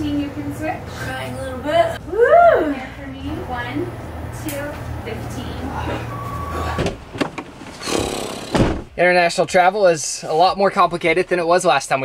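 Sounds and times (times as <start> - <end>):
van door shutting: 6.4 - 9.0.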